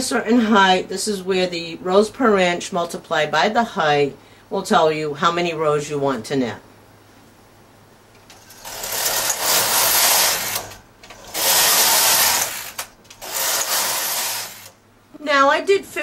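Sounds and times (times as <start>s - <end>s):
knitting machine carriage passing: 8.3s - 14.8s.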